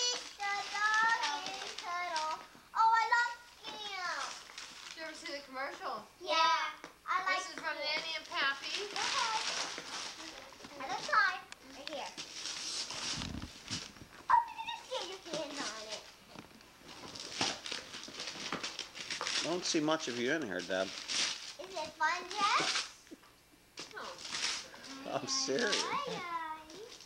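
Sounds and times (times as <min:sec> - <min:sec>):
wrapping paper rustling and tearing: 0:00.0 - 0:05.4, 0:08.1 - 0:16.2, 0:16.8 - 0:23.0, 0:23.8 - 0:27.0
young children chattering: 0:14.3 - 0:16.0, 0:23.9 - 0:27.0.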